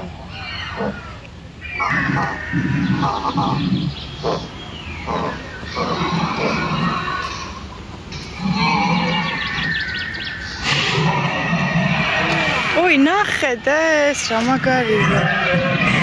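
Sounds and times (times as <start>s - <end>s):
dinosaur cries from loudspeaker: 0.0s - 3.7s, 14.9s - 16.0s.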